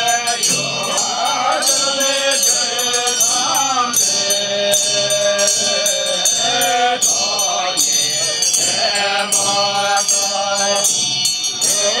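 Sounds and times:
handbells ringing: 0.0 - 12.0
monks chanting in low voices: 0.0 - 12.0
ritual drum strokes: 0.0 - 12.0.

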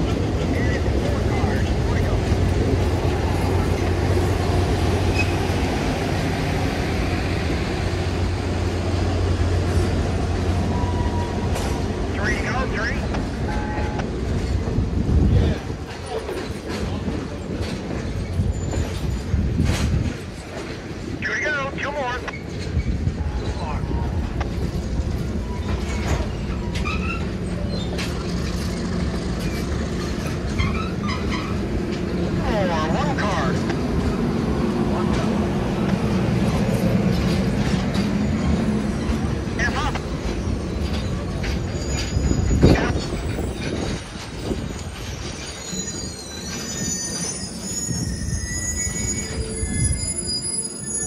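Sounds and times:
train wheels rumbling on rails: 0.0 - 51.0
high-pitched wheel squeals: 44.9 - 51.0.

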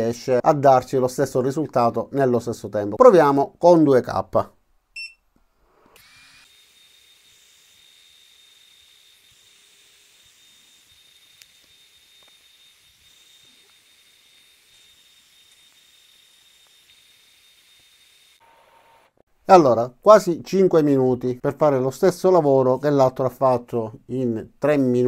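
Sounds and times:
laser engraver whine: 6.0 - 19.2.

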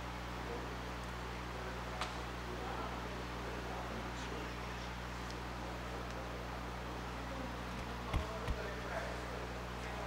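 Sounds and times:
low electrical hum: 0.0 - 10.0
microphone handling thumps: 7.7 - 8.7.

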